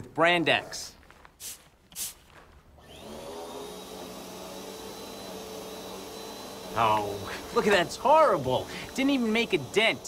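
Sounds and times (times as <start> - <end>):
spray bottle spritz: 1.4 - 2.3
vacuum cleaner running: 2.8 - 10.0.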